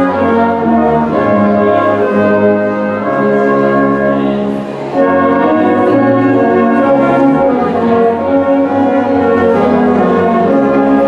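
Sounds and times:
brass band playing held chords: 0.0s - 11.0s.

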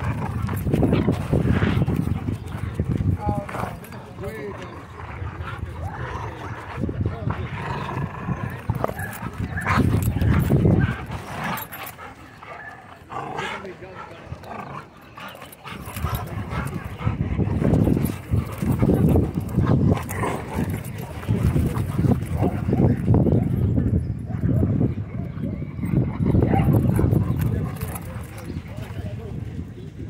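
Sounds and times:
dogs barking in play: 0.0s - 28.9s
people's voices in background: 0.0s - 30.0s.

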